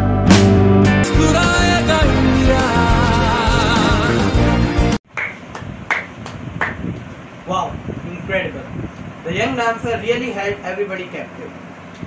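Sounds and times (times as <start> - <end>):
person clapping hands: 5.1 - 6.8.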